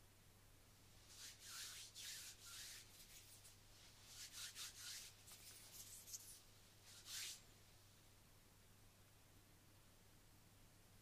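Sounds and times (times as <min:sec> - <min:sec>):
palms rubbing together: 0:01.1 - 0:07.4.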